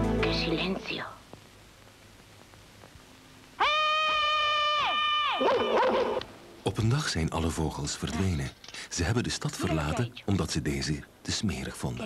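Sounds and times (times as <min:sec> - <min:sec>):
man narrating: 0:06.6 - 0:12.0.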